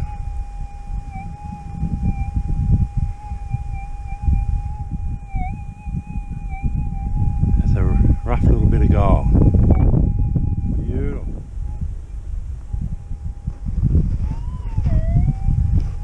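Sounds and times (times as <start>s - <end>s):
low microphone rumble: 0.0s - 16.0s
metal detector threshold hum: 0.0s - 16.0s.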